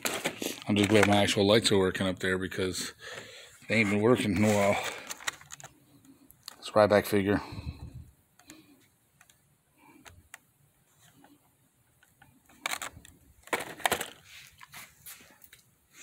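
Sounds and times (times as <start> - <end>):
plastic crinkling scrapes: 0.0 - 1.4, 3.7 - 5.7
plastic packaging clicks and rustles: 0.0 - 1.8, 3.7 - 6.8, 10.0 - 15.7.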